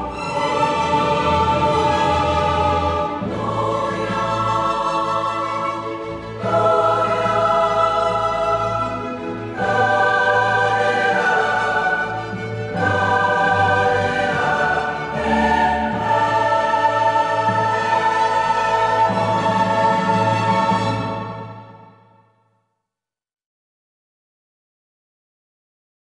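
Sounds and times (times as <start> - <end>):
choir holding slow chords: 0.0 - 22.2.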